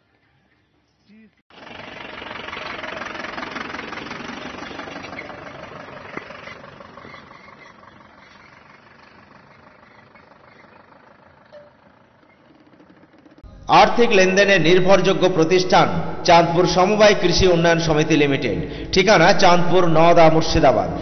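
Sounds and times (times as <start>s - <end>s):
diesel engine driving past: 1.5s - 21.0s.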